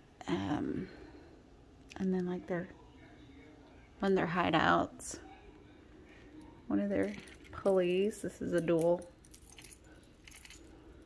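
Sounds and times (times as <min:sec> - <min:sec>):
metal chain links clinking: 0:06.9 - 0:11.0.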